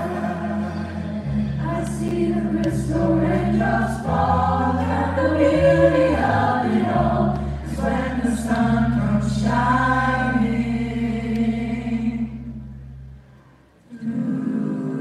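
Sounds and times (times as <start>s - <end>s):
mixed choir singing chords: 0.0s - 12.7s, 13.9s - 15.0s
low bass line: 0.0s - 13.4s.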